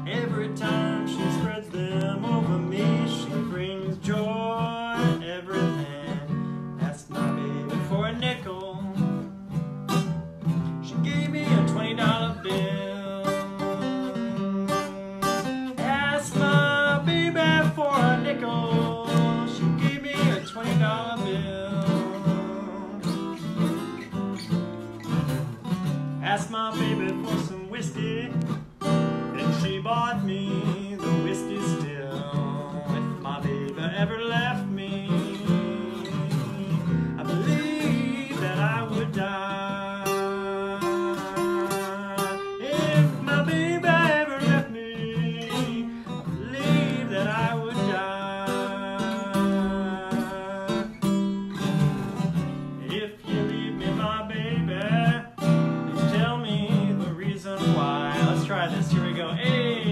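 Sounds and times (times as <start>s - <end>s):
acoustic guitar: 0.0s - 59.9s
man singing blues: 0.0s - 59.9s.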